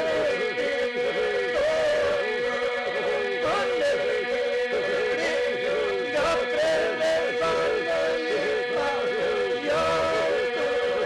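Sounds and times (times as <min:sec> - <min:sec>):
men's group singing folk song: 0:00.0 - 0:11.0.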